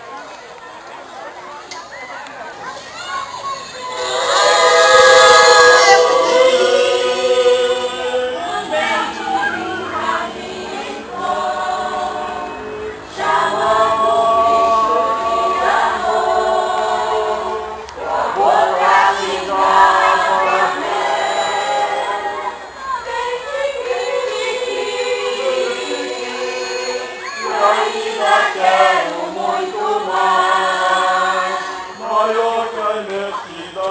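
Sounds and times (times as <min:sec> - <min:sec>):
choir singing held notes: 0:03.8 - 0:33.9.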